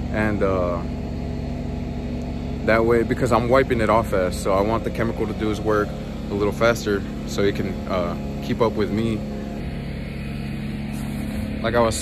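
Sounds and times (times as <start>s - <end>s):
motor humming: 0.0s - 12.0s.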